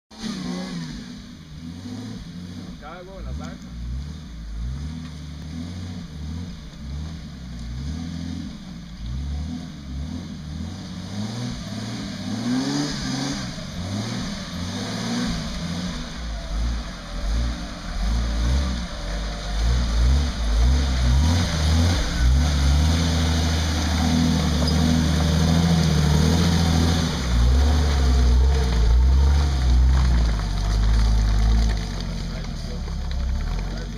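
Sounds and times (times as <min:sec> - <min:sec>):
engine running at low revs: 0:00.1 - 0:33.9.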